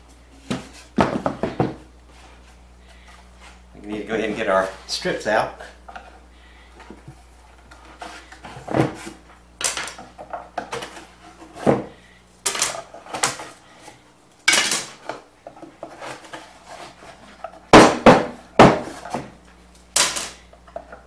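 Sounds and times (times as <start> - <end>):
wooden strips clattering on workbench: 8.0 - 13.6, 14.5 - 19.4, 20.0 - 21.0.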